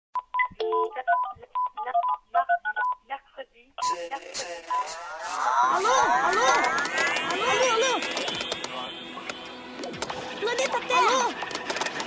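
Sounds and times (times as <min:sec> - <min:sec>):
telephone touch-tone beeps: 0:00.2 - 0:01.8
clipped voice fragments: 0:03.8 - 0:11.4.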